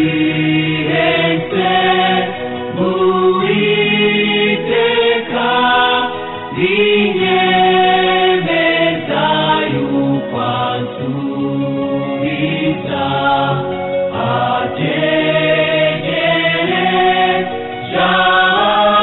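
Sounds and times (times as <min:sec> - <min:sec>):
choir singing a hymn: 0:00.0 - 0:19.0.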